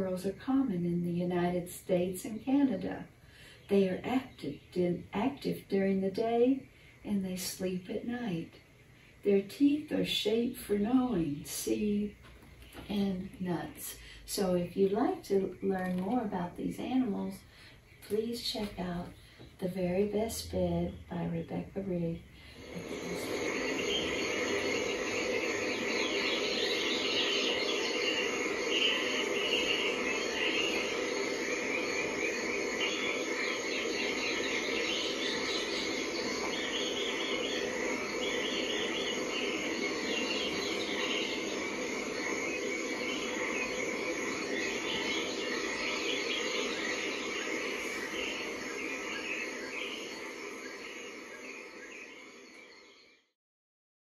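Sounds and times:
frogs chirping: 0.0 - 53.3
insects chirping: 0.0 - 53.3.

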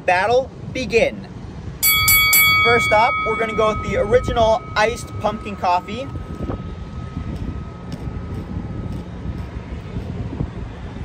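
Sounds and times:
wind buffeting microphone: 0.5 - 11.0
car traffic: 1.3 - 10.4.

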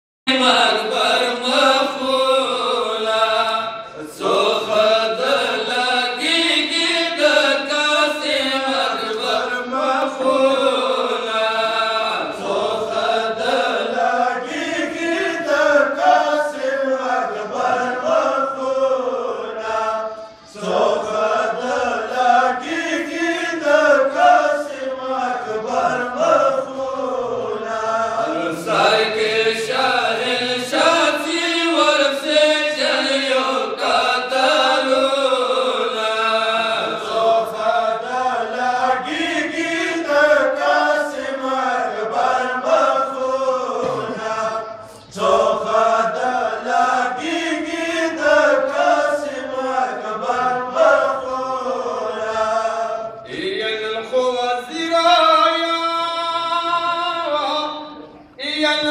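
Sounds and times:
men chanting a lament in unison: 0.3 - 58.9.

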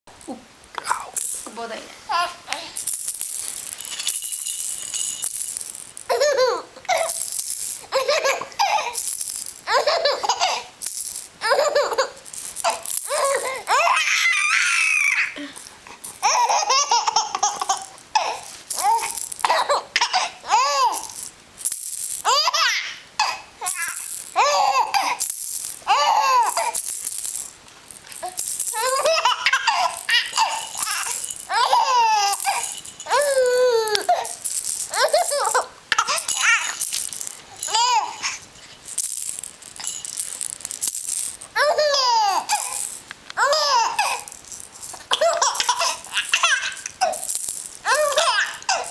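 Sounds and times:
plastic rattle shaking: 0.2 - 48.9
baby laughing and squealing: 2.1 - 2.8, 6.1 - 7.2, 7.8 - 10.8, 11.4 - 15.6, 16.2 - 21.2, 22.2 - 25.2, 25.8 - 26.9, 28.2 - 36.9, 37.5 - 38.5, 41.5 - 42.8, 43.4 - 44.3, 44.9 - 48.9.

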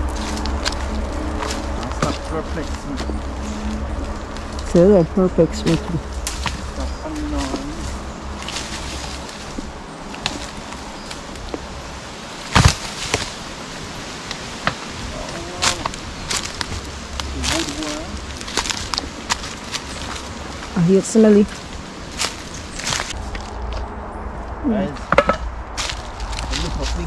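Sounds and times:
footsteps crunching through dry leaves: 0.0 - 27.0.

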